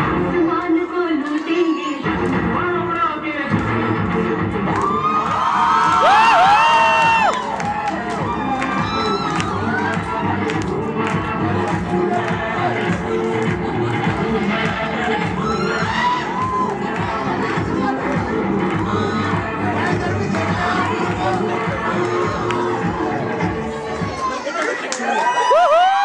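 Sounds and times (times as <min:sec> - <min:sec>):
dance music: 0:00.0 - 0:26.0
crowd cheering and whooping: 0:04.7 - 0:10.7, 0:13.4 - 0:17.6, 0:21.7 - 0:26.0.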